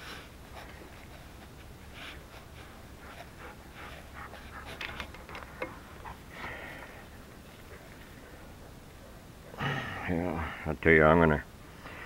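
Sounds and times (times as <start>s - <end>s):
hands clicking and rustling: 4.2s - 6.6s
man breathing: 6.1s - 7.3s, 11.8s - 12.0s.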